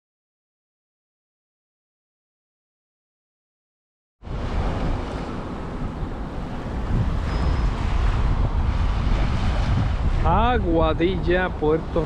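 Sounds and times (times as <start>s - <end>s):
small waves washing on sand: 4.2s - 10.8s
wind on microphone: 4.2s - 12.0s.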